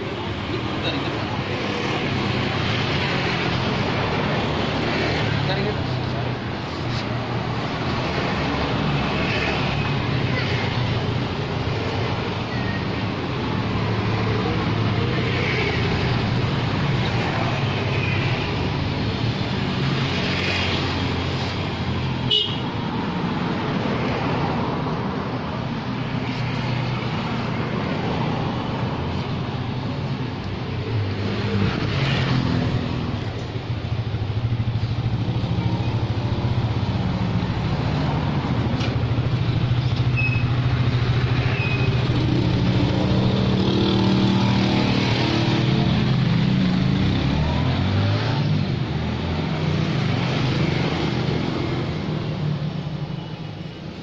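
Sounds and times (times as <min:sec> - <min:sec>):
roadside traffic: 0:00.0 - 0:54.0.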